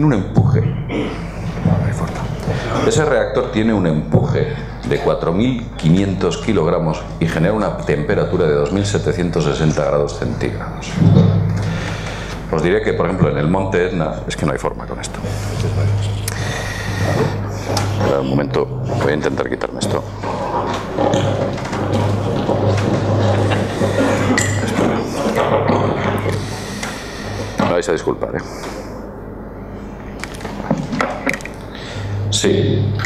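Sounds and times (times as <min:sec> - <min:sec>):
electrical hum from microphone system: 0:00.0 - 0:33.0
microphone handling knocks: 0:10.9 - 0:12.1.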